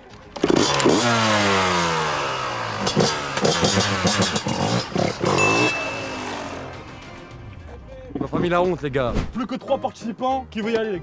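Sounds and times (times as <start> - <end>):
dirt bike engine revving: 0.4 - 7.2.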